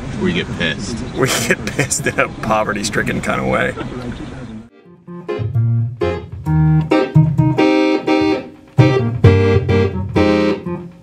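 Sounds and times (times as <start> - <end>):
electric organ chords: 4.2 - 11.0.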